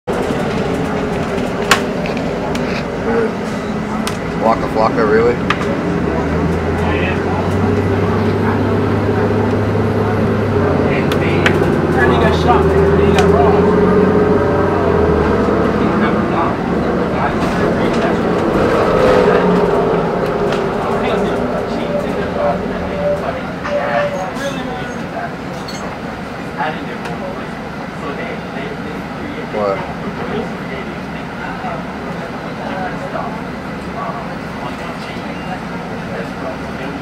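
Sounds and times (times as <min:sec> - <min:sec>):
low hum: 0:00.1 - 0:24.2
held whine: 0:00.1 - 0:25.3
bus engine and road noise: 0:00.1 - 0:37.0.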